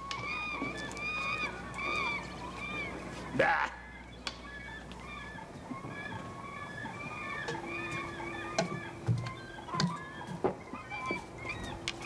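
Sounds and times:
chickens clucking: 0.0s - 12.0s
geese honking: 0.0s - 12.0s
steady low hum: 0.0s - 12.0s.

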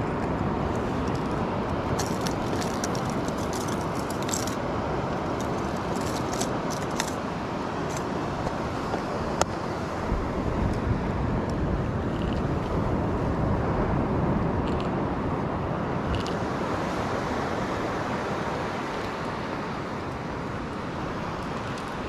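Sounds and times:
beach surf: 0.0s - 22.0s
wind rumbling on microphone: 0.0s - 22.0s.

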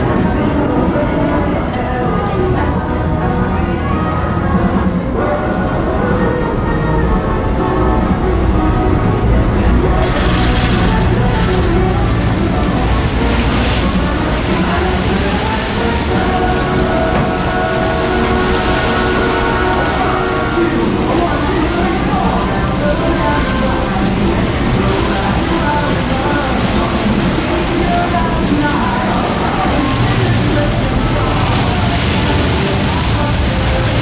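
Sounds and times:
ferry engines rumbling: 0.0s - 34.0s
indistinct voices: 0.0s - 34.0s
music playing: 0.0s - 34.0s.

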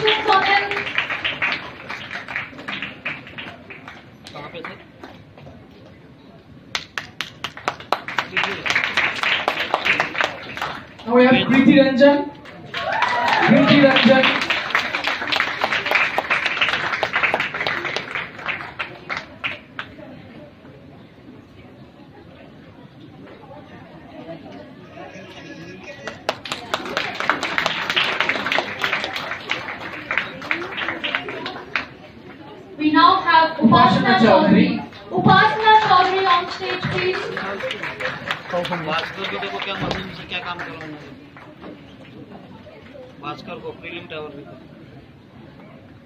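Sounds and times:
audience applause: 0.0s - 5.2s, 6.7s - 11.7s, 12.4s - 20.1s, 25.1s - 32.6s, 34.8s - 43.0s
people talking at once: 17.9s - 46.0s.

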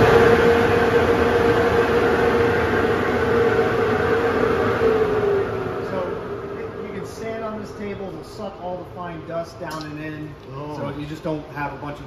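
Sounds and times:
dust collector humming: 0.0s - 9.4s.

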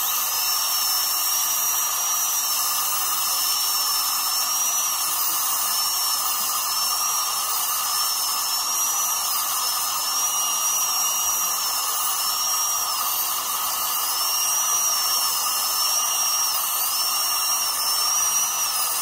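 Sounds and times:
dental drill whining: 0.0s - 19.0s
steady hiss: 0.0s - 19.0s.

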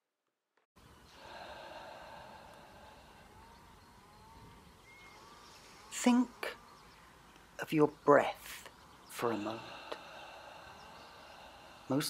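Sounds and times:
person breathing slowly: 0.8s - 5.9s, 8.5s - 12.0s.

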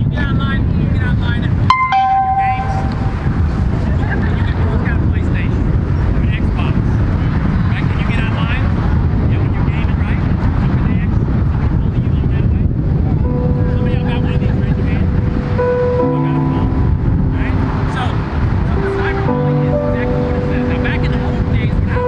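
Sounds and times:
wind rumbling on microphone: 0.0s - 22.0s.

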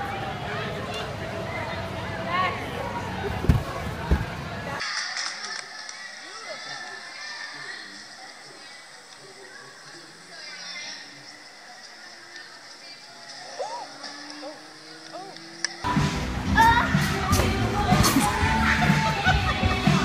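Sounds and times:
faint voices: 0.0s - 15.9s.

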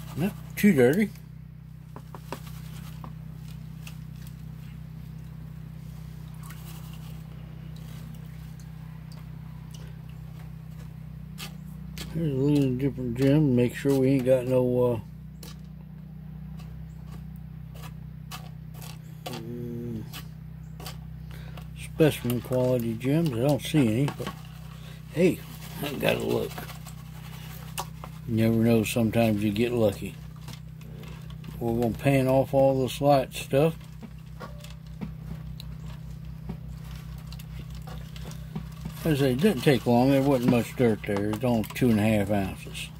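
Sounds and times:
steady low hum: 0.0s - 42.9s
gravel clicking in a pan: 2.0s - 15.8s, 16.5s - 42.9s.

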